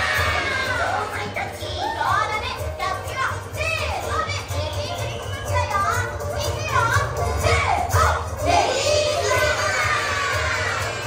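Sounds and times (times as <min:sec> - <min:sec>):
children shouting and squealing: 0:00.0 - 0:02.8
background music: 0:00.0 - 0:11.0.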